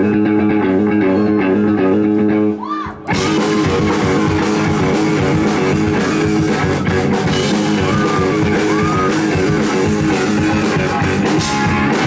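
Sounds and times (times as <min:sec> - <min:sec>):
bass guitar: 0:00.0 - 0:12.0
electric guitar: 0:00.0 - 0:12.0
drum kit: 0:03.0 - 0:12.0.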